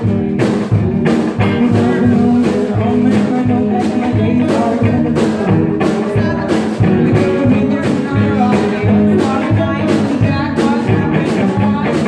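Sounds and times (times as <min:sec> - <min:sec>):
strummed guitar: 0:00.0 - 0:12.0
thumping beat: 0:00.0 - 0:12.0
woman singing: 0:01.2 - 0:12.0.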